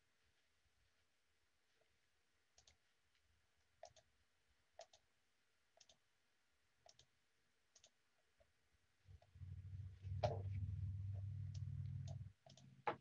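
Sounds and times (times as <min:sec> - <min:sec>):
computer mouse clicks: 0:02.6 - 0:02.8, 0:03.8 - 0:04.1, 0:04.8 - 0:05.1, 0:05.8 - 0:06.0, 0:06.8 - 0:07.1, 0:07.7 - 0:08.0, 0:11.1 - 0:13.0.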